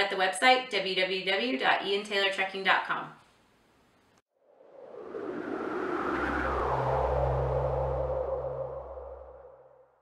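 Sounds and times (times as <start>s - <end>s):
synthesized whoosh gliding down: 4.4s - 10.0s
low steady drone: 5.2s - 9.7s.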